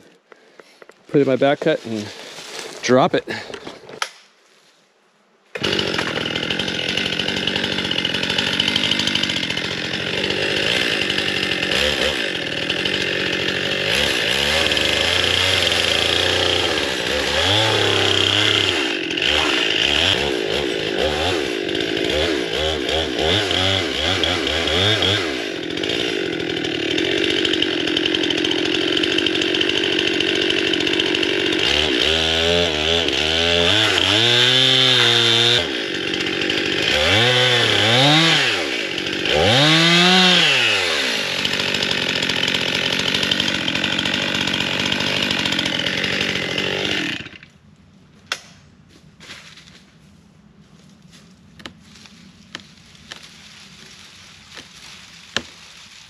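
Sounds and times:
chainsaw cutting tree trunk: 5.5 - 47.6, 51.6 - 56.0.

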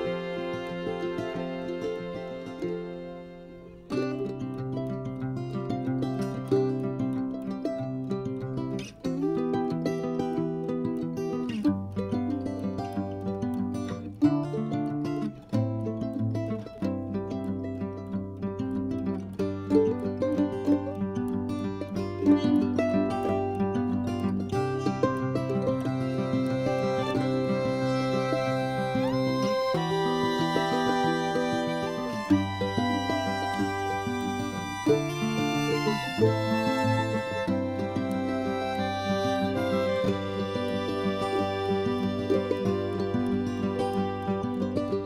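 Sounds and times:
plucked string background music: 0.0 - 45.0.

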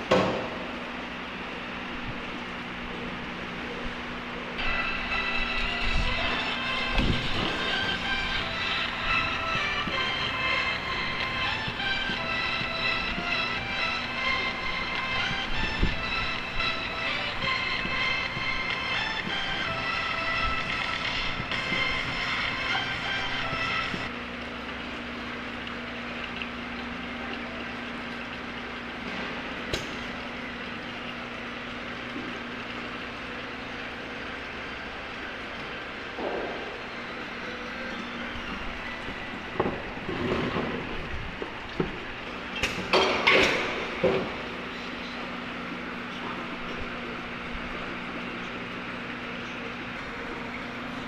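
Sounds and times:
machinery whine and hum: 0.0 - 51.0.

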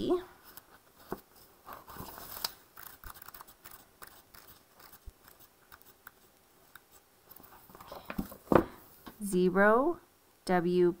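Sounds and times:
book pages flipping: 0.4 - 8.6.

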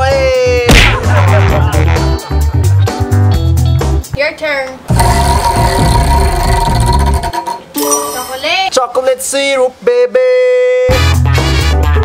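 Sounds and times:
steady held tone: 4.9 - 8.5.

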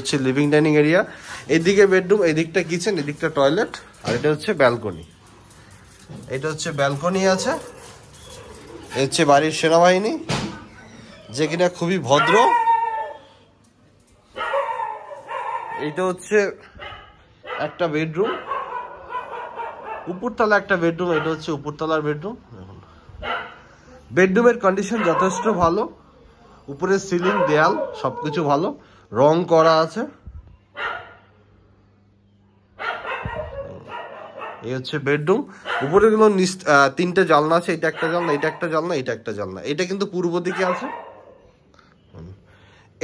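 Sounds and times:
dog yelping: 10.7 - 13.4, 16.8 - 20.2, 25.0 - 25.6, 27.2 - 28.6, 32.8 - 34.7, 37.8 - 39.0, 40.5 - 41.4
dog barking and whining: 10.7 - 13.5, 14.4 - 16.0, 16.8 - 20.2, 21.1 - 21.5, 24.8 - 25.7, 27.2 - 28.7, 32.8 - 34.7, 35.6 - 36.0, 37.7 - 39.0, 40.4 - 41.6.

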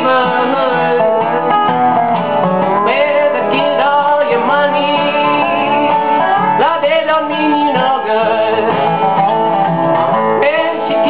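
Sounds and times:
man singing: 0.0 - 1.6, 2.6 - 9.3, 10.3 - 11.0
slide resonator guitar: 0.0 - 11.0
strummed acoustic guitar: 0.0 - 11.0.

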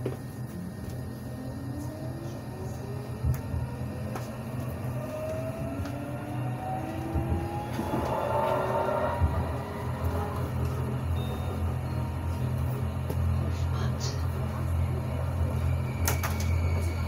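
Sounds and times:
tram traction motors whining: 0.0 - 17.0
wheels rumbling on rails: 0.0 - 17.0.

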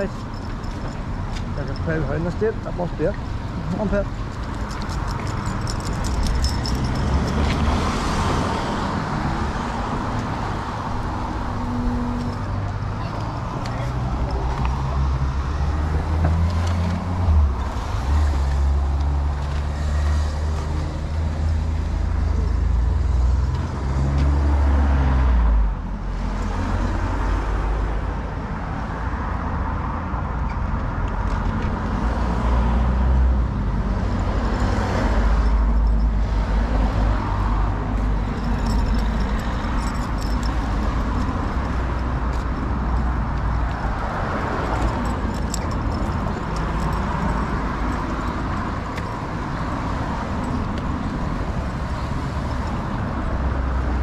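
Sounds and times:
road traffic passing: 0.0 - 54.0.

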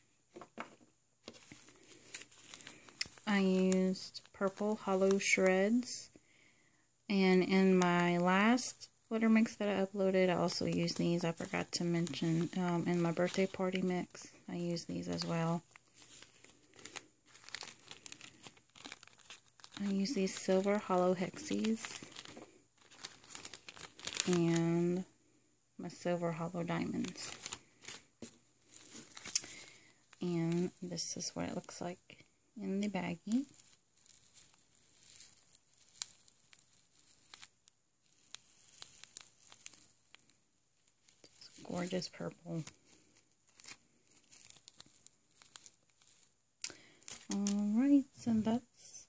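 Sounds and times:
plastic bag crinkling: 0.4 - 6.2, 7.1 - 25.2, 25.9 - 48.2.

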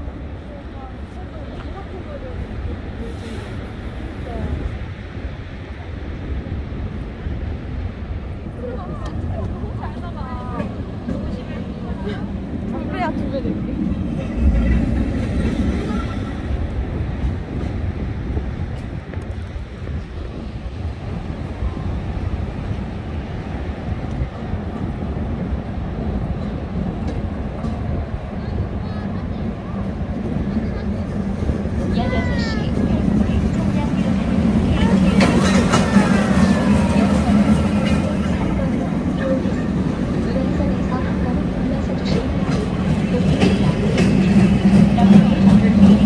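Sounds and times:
people talking: 0.0 - 4.9, 8.4 - 16.7, 27.1 - 46.0
wind: 0.0 - 46.0.

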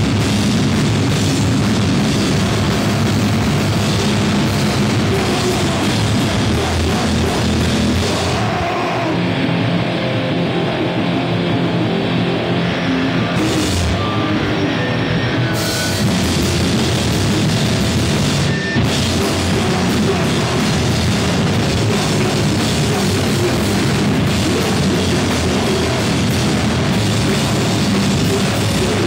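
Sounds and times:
drum kit and cymbals: 0.0 - 8.9, 15.6 - 29.0
electric guitars: 0.0 - 29.0
rock band playing loud: 0.0 - 29.0.

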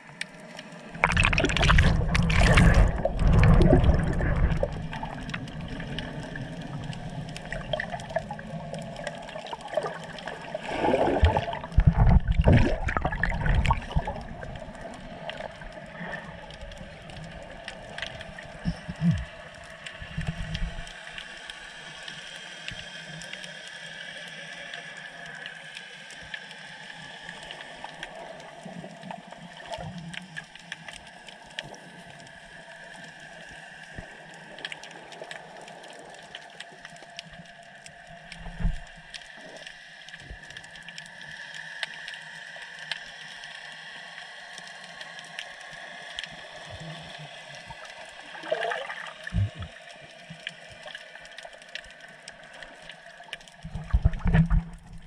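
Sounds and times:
faint crackling clicks: 0.0 - 10.7, 11.3 - 55.0
underwater hiss: 0.2 - 30.0, 30.6 - 55.0
rising gurgle: 0.9 - 21.0, 46.7 - 49.8, 52.5 - 55.0.

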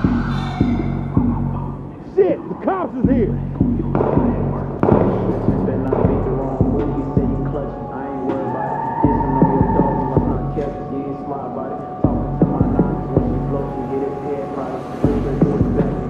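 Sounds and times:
deep throbbing bass hum: 0.0 - 2.0, 3.0 - 8.1, 9.0 - 14.0, 15.1 - 16.0
people talking indistinctly: 0.0 - 16.0.

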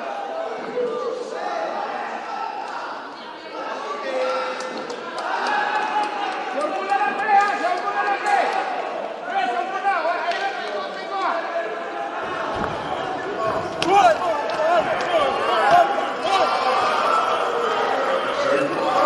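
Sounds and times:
voices calling and shouting: 6.0 - 19.0.

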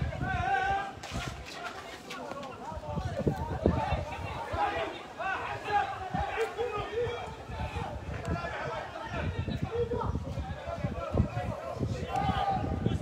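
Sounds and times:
voices calling out and talking: 0.0 - 13.0.

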